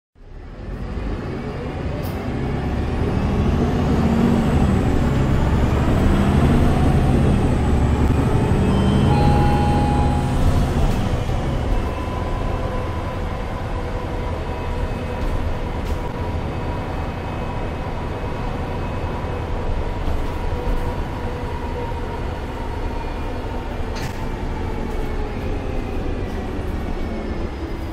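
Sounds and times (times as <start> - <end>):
bus diesel engine accelerating: 0.2 - 27.9.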